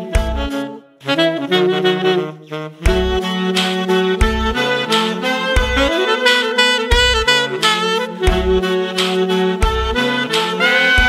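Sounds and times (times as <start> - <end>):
saxophones playing together: 0.0 - 11.0.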